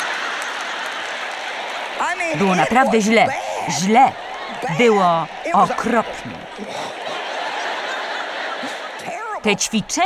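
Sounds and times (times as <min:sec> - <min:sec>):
audience laughing: 0:00.0 - 0:10.0.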